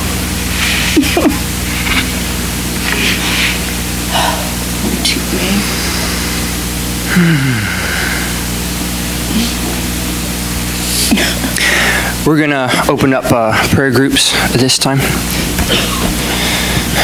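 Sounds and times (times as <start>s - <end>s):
room noise: 0.0s - 17.0s
sound system hum: 0.0s - 17.0s.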